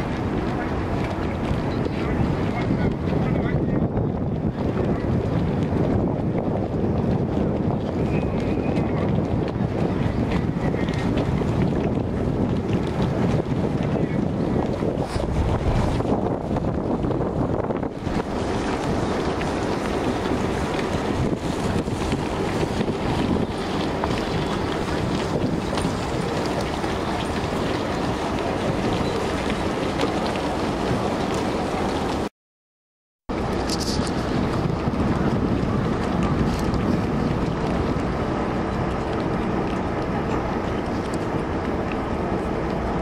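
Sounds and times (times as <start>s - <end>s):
wind buffeting microphone: 0.0s - 32.3s, 33.3s - 43.0s.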